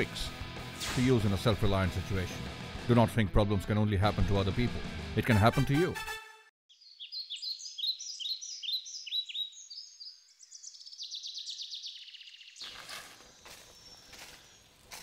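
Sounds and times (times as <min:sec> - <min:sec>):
birds chirping: 0:06.7 - 0:15.0.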